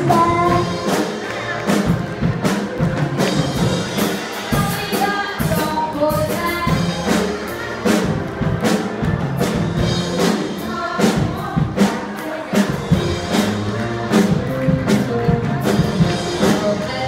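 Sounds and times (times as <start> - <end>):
drum beat: 0.0 - 16.9
live pop band: 0.0 - 17.0
group singing together: 10.2 - 13.0.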